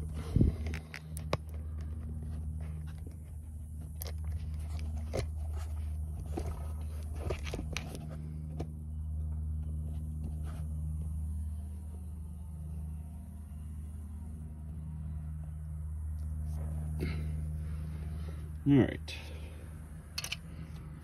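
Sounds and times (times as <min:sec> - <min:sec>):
phone being handled: 0:00.5 - 0:08.7.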